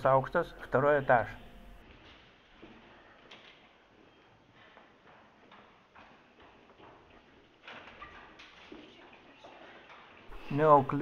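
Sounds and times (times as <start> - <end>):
footsteps walking: 1.7 - 10.6.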